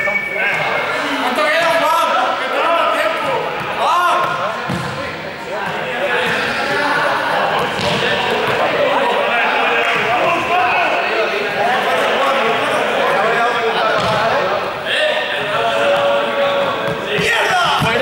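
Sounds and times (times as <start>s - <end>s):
people talking and calling out: 0.0s - 18.0s
ball bouncing on a hall floor: 3.6s - 6.5s, 7.5s - 8.7s, 14.0s - 14.4s, 16.7s - 18.0s.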